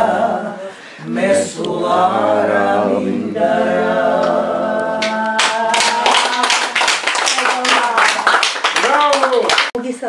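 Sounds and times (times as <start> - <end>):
group singing unaccompanied: 0.0 - 6.8
applause: 5.4 - 9.8.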